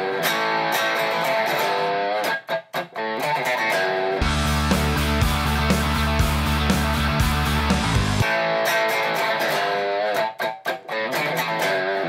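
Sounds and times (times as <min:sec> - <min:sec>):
electric guitar through small speaker: 0:00.0 - 0:12.0.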